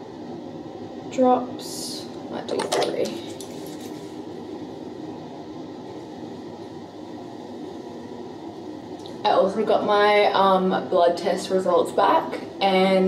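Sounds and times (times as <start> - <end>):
low background hum and rumble: 0.0 - 13.0.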